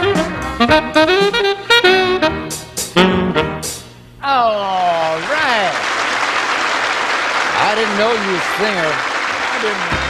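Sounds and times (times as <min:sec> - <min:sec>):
studio audience applause: 0:05.0 - 0:10.0.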